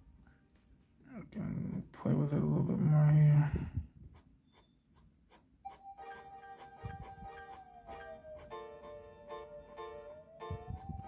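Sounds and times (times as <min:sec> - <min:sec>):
pen scratching on card: 0:04.1 - 0:10.0
music: 0:05.7 - 0:11.0.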